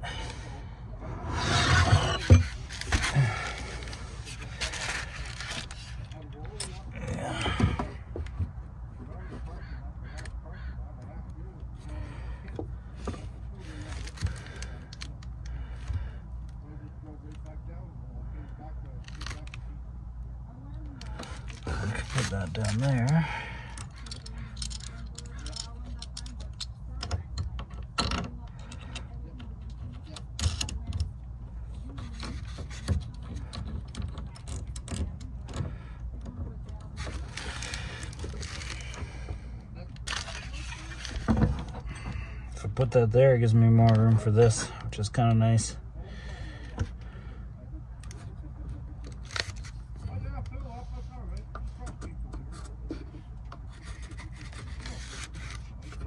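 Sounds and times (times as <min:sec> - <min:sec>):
steady low hum: 0:00.0 - 0:56.0
hands working cable through panel: 0:20.7 - 0:45.4.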